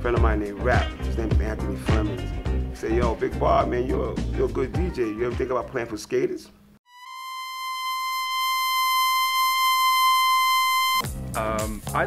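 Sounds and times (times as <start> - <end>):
high electronic tone: 6.9 - 11.0.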